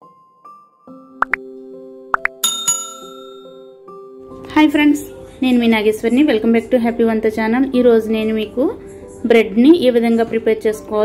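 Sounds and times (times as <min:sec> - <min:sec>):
soft keyboard music: 0:00.0 - 0:11.0
bell-like chime: 0:02.4 - 0:03.8.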